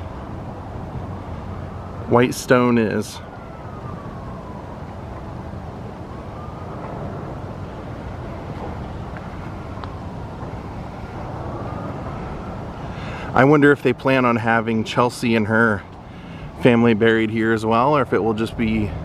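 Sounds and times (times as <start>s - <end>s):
faint siren wailing: 0.0s - 19.0s.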